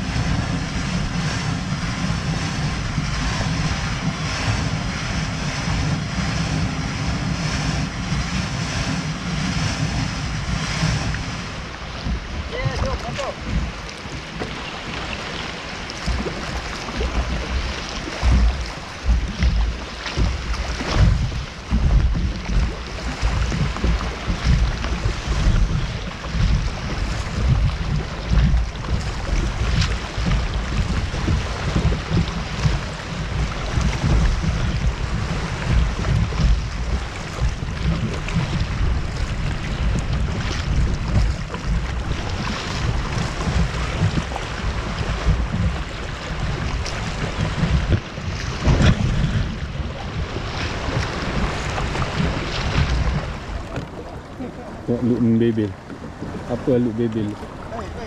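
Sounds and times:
water splashing against kayak hull: 0.0s - 58.0s
wind buffeting microphone: 0.0s - 58.0s.

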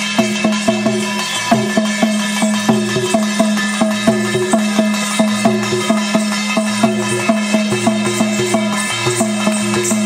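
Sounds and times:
drum strikes: 0.0s - 10.0s
ringing metallic tone: 0.0s - 10.0s.

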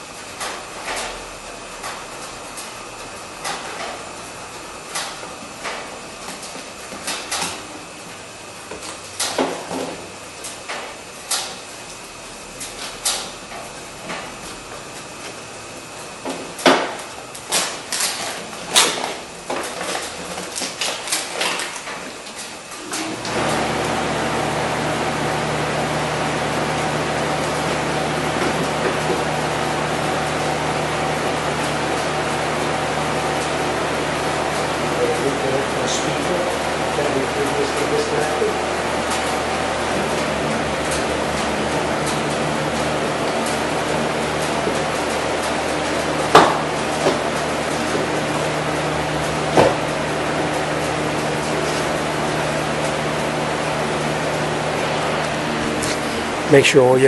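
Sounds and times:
machine hum with low drone: 0.0s - 57.0s.

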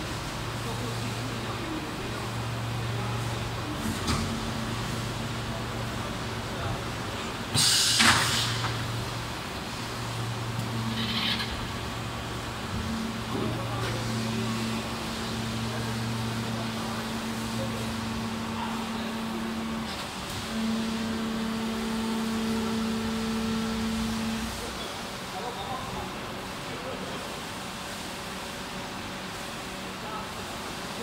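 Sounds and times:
injection moulding machine hum: 0.0s - 31.0s
air hiss bursts: 7.5s - 8.8s.

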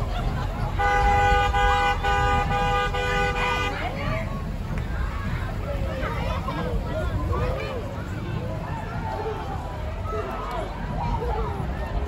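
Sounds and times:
crowd chatter: 0.0s - 12.0s
vehicle horn honking: 0.8s - 3.8s.

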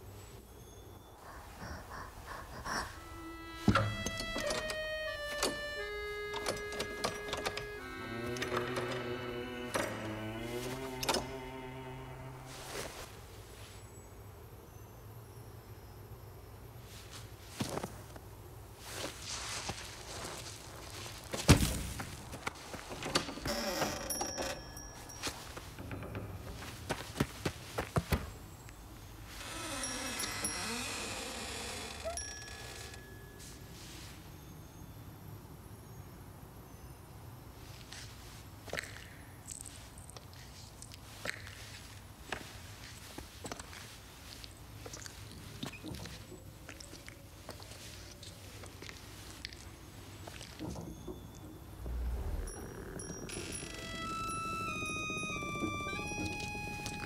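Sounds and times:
high bell-like music notes: 3.0s - 9.0s, 51.2s - 57.0s
wooden door creaking open: 3.0s - 12.5s, 22.8s - 26.8s, 29.4s - 33.1s, 50.5s - 57.0s
small chimes tinkling: 24.0s - 25.8s, 29.7s - 31.4s, 32.0s - 37.1s, 51.2s - 57.0s
faint rustles and clicks: 37.6s - 57.0s.

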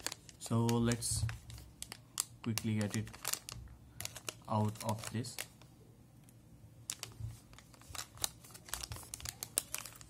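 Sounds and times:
plastic bag crinkling: 0.0s - 5.6s, 6.9s - 10.0s.

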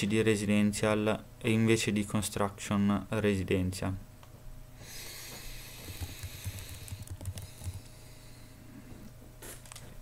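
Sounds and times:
computer keyboard typing: 5.9s - 7.9s.

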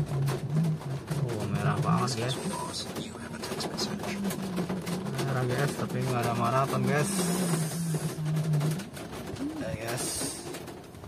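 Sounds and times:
man's low voice: 0.0s - 8.6s, 9.4s - 10.7s
rain tapping on car body: 0.0s - 11.0s.

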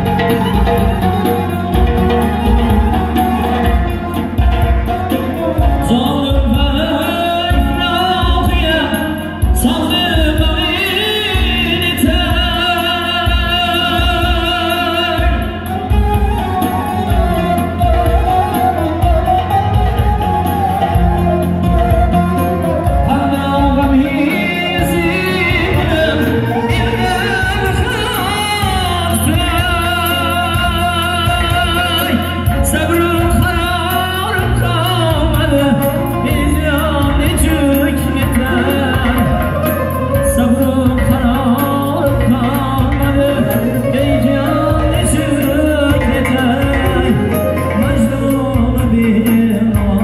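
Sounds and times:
band accompaniment: 0.0s - 50.0s
electronic keyboard: 0.0s - 50.0s
man singing live pop: 0.0s - 50.0s
steady deep drum beat: 0.0s - 50.0s.

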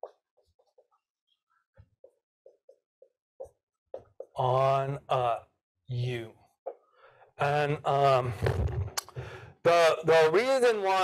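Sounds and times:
marker writing on whiteboard: 0.0s - 4.4s.

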